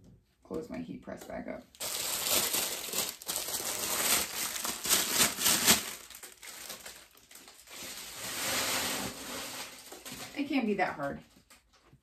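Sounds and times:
plastic bag crinkling: 0:01.7 - 0:11.8.

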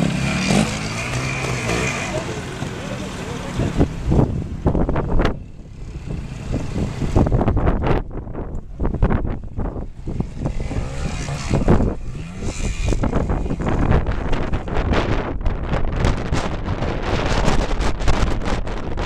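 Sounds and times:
motorcycle engines revving: 0:00.0 - 0:19.0
background voices: 0:01.1 - 0:04.1
wind rumble on microphone: 0:03.4 - 0:19.0.

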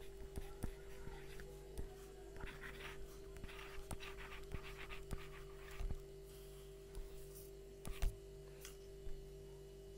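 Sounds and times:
pen scratching on touchscreen: 0:00.0 - 0:06.0, 0:07.0 - 0:08.2
steady low hum: 0:00.0 - 0:09.9.

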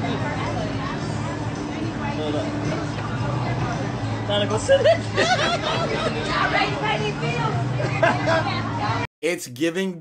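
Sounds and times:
low background babble: 0:00.0 - 0:09.1
people talking over one another: 0:05.6 - 0:09.0.

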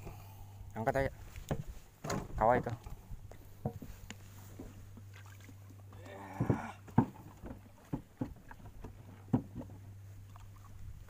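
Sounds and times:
steady low hum: 0:00.0 - 0:11.0
knocks against boat hull: 0:03.6 - 0:03.9, 0:06.4 - 0:09.7.

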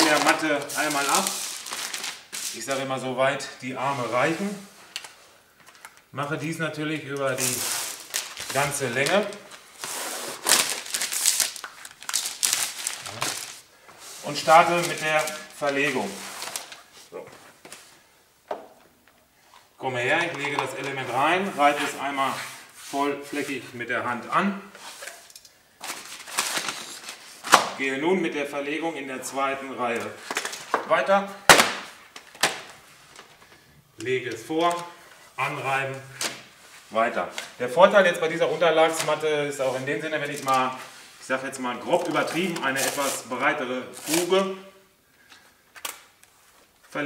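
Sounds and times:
plastic film peeling and crinkling: 0:00.0 - 0:03.0, 0:03.8 - 0:06.1, 0:07.0 - 0:17.9, 0:24.8 - 0:27.8, 0:29.9 - 0:30.8, 0:31.5 - 0:33.5, 0:34.3 - 0:34.9, 0:35.9 - 0:44.5, 0:45.7 - 0:47.0.

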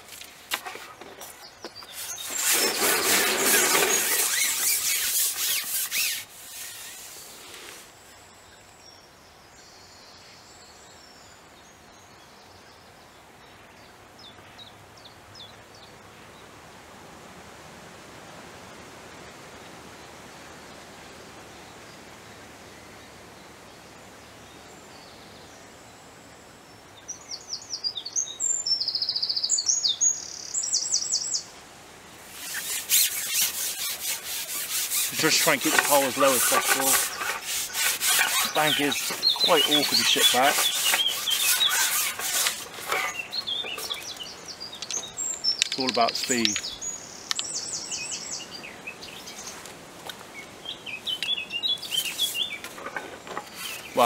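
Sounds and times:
songbirds chirping: 0:00.0 - 0:16.6, 0:19.2 - 0:54.0
fishing pole rasping rub: 0:01.9 - 0:07.9, 0:32.3 - 0:44.1, 0:53.4 - 0:53.9
songbird singing with trills: 0:26.7 - 0:31.5, 0:38.4 - 0:42.0, 0:42.9 - 0:49.6, 0:50.3 - 0:52.7.

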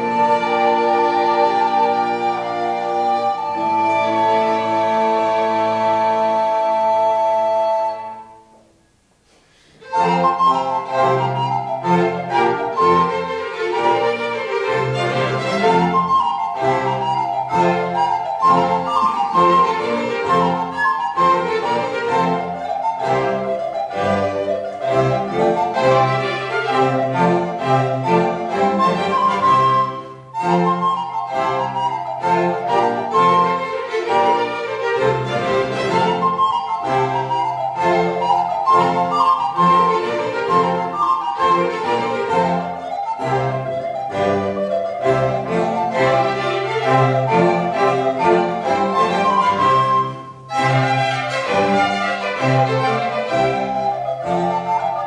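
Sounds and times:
recorders playing: 0:00.0 - 0:08.8, 0:09.8 - 0:55.0
string orchestra: 0:00.0 - 0:08.8, 0:09.6 - 0:55.0.

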